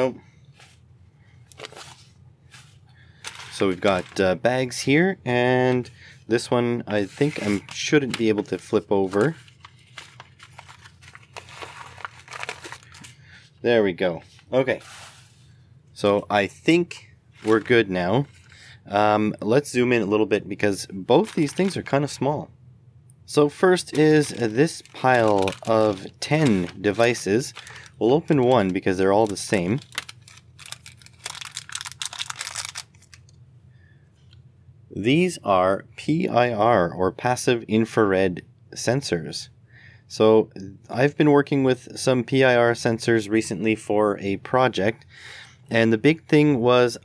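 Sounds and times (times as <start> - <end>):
paper envelope crinkling: 1.5 - 4.4, 7.0 - 13.2, 17.4 - 18.6, 21.1 - 22.0, 23.8 - 33.3.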